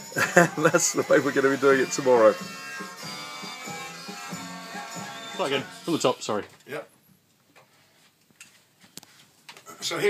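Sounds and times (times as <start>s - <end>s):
music from vinyl record: 0.0s - 6.0s.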